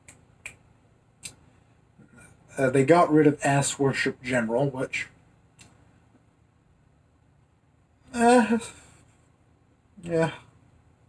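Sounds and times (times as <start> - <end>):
faint clicks: 5.5 - 6.2.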